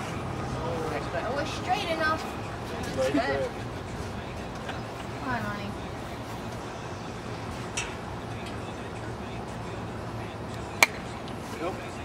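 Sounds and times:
outdoor background: 0.0 - 12.0.

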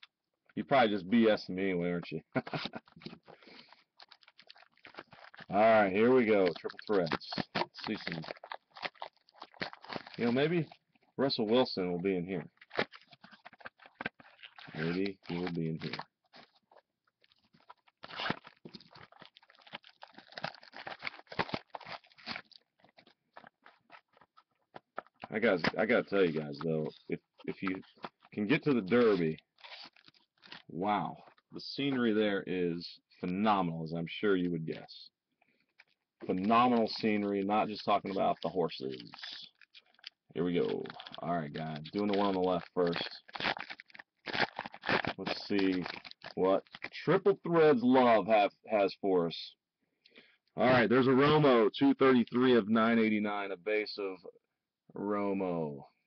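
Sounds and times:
foil wrapper crinkling: 2.4 - 31.4, 35.5 - 47.1.

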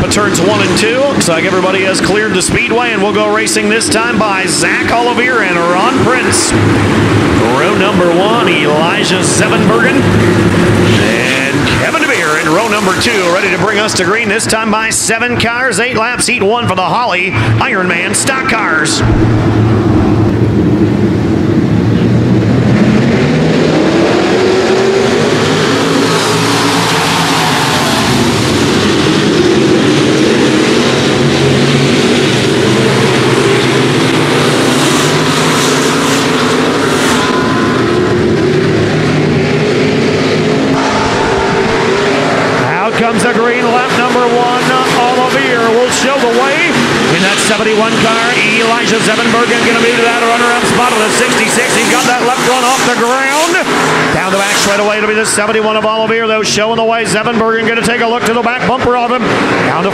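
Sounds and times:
race car engines revving: 0.0 - 59.9.

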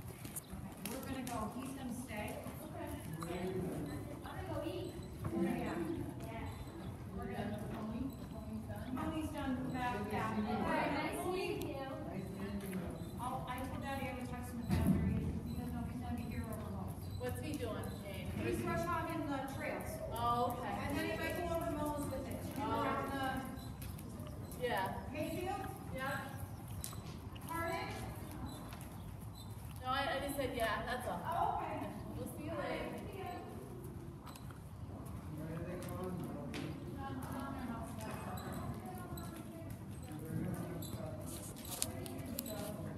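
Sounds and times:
indistinct voices talking: 0.0 - 33.6
horse hoofbeats on dirt: 11.9 - 41.5.

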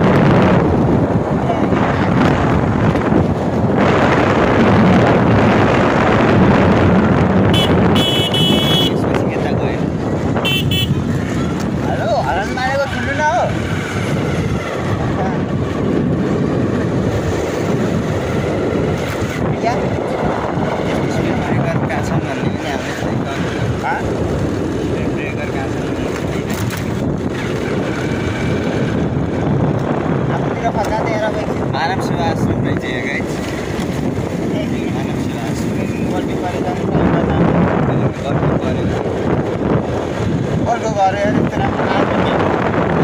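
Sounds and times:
motorcycle running: 0.0 - 43.0
tyres on road: 0.0 - 43.0
wind buffeting microphone: 0.0 - 43.0.

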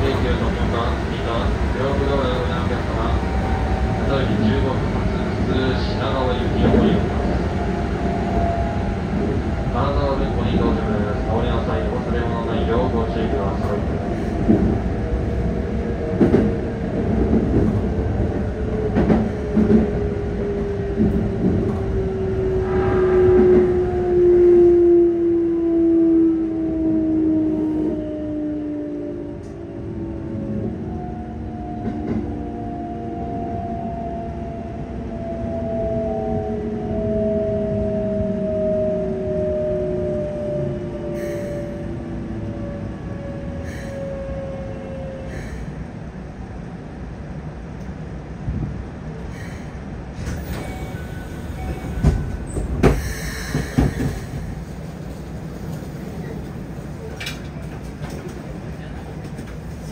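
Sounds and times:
train running rumble: 0.0 - 24.4, 45.3 - 59.9.

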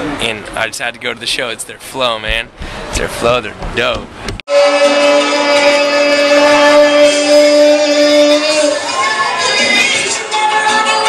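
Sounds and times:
long steady held note: 4.5 - 8.8.

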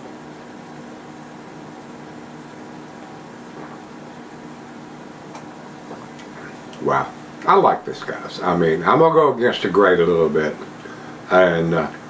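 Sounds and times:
low electrical hum with hiss: 0.0 - 12.0.

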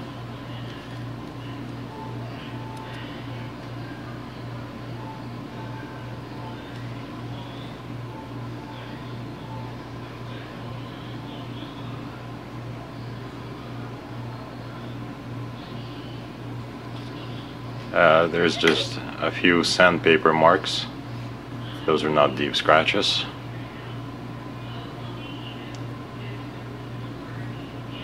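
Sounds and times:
low mechanical hum: 0.0 - 28.0.

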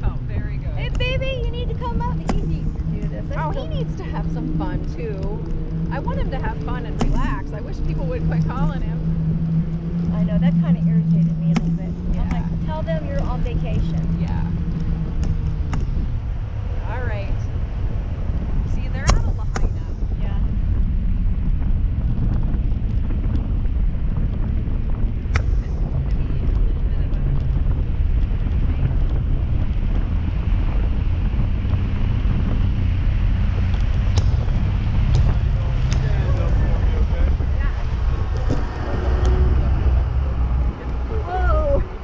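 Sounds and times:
boat sounds: 0.0 - 42.0
wind buffeting microphone: 0.0 - 42.0
faint voices: 35.0 - 42.0.

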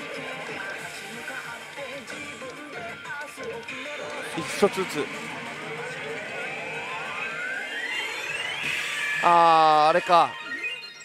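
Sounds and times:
gaming hall noise: 0.0 - 11.0
slot machine rising whine: 3.7 - 11.0.

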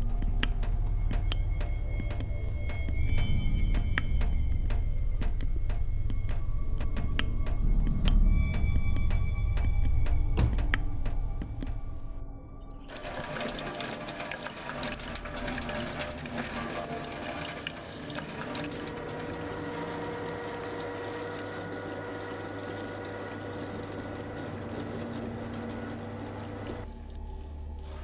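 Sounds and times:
electric meat grinder humming: 15.7 - 26.9.

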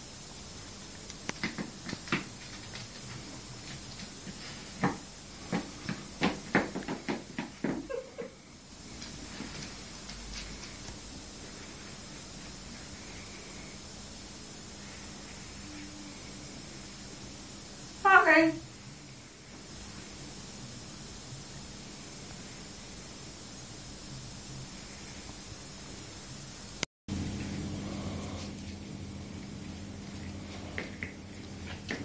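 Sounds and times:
faint steady hiss: 0.0 - 32.0
claws clicking on hardwood floor: 1.2 - 7.9.

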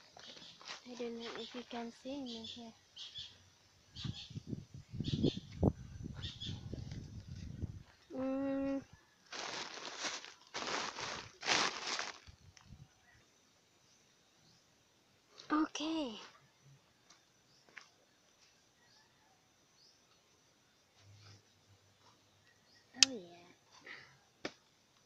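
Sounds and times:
person humming: 8.1 - 8.9
rustling plastic sacks: 9.2 - 12.7.

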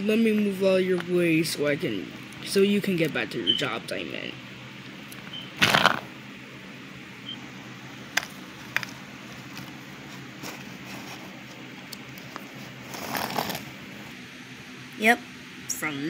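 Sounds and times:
scraping rustle: 8.6 - 11.6, 12.2 - 13.8.

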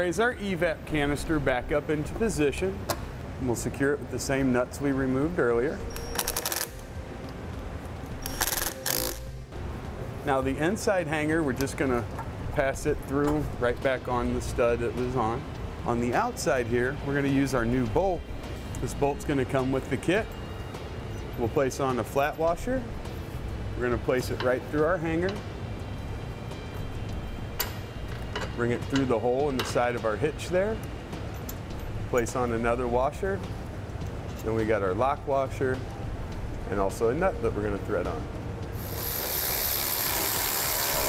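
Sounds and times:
low shop background: 0.0 - 41.0.

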